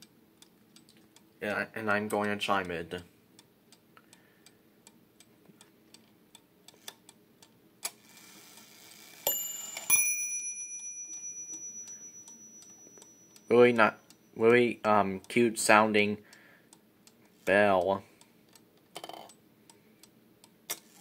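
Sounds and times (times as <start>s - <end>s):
clock ticking faintly: 0.0s - 8.7s, 9.3s - 21.0s
clock bells striking: 9.3s - 14.0s.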